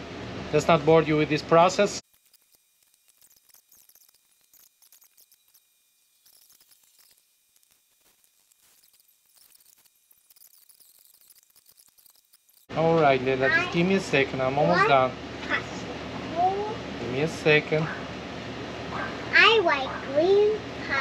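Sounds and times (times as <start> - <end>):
faint clicks and ticks: 2.1 - 12.7.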